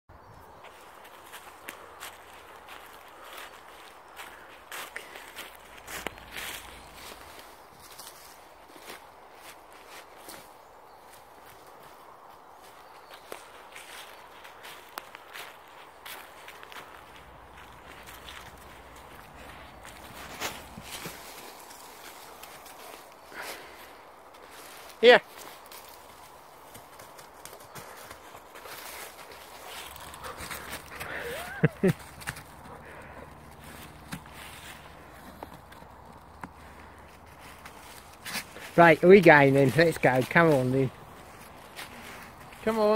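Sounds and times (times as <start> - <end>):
footsteps crunching dry leaves: 0.6 - 42.9.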